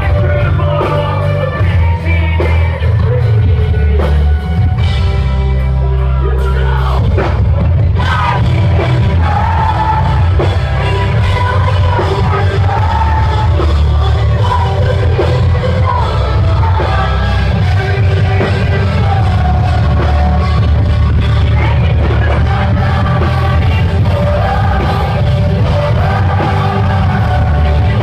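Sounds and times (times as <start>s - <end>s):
person singing lead vocal: 0.0s - 5.0s, 5.6s - 28.0s
rock band playing live: 0.0s - 28.0s.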